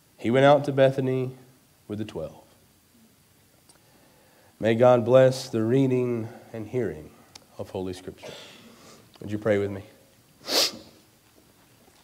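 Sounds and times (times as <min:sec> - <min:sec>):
man's sharp breath: 0:10.4 - 0:11.0.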